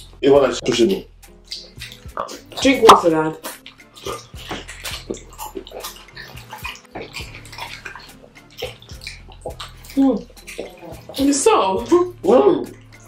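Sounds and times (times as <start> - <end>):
wet chewing and smacking: 0.0 - 13.0
squelches and lip smacks: 1.2 - 2.6, 3.4 - 11.3.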